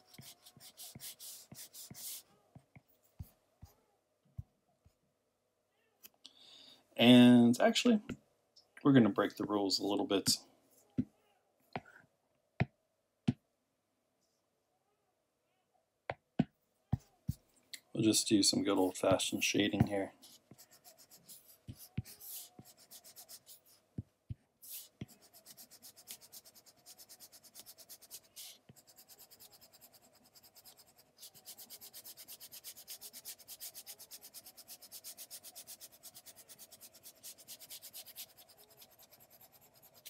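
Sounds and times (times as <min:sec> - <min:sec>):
stylus strokes on tablet screen: 0:00.0 - 0:05.0, 0:18.1 - 0:40.0.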